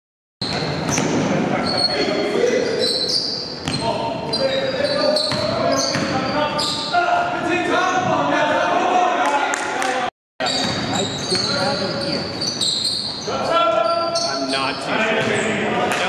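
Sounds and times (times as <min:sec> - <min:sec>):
players' voices echoing: 0:00.9 - 0:12.5, 0:13.2 - 0:16.0.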